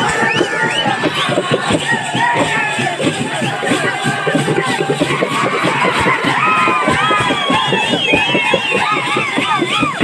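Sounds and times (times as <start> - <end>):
crowd shouting and cheering: 0.0 - 10.0
frame drums and barrel drum: 0.0 - 10.0
high whooping voices: 0.0 - 10.0.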